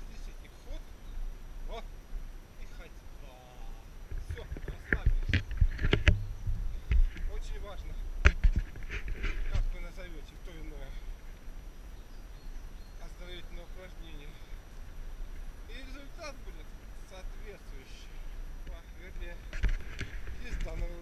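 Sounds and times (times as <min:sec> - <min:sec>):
knocks against microphone: 0:08.2 - 0:09.6.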